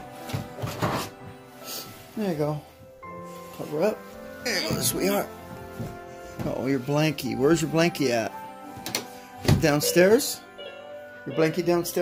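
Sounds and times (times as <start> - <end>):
electronic keyboard music: 1.2 - 12.0
soft knocks of handling: 4.7 - 6.8.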